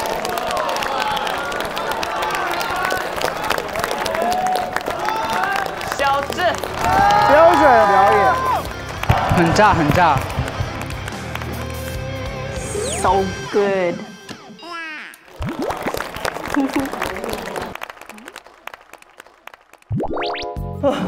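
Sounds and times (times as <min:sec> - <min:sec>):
background music: 0:06.0 - 0:14.8, 0:20.0 - 0:21.0.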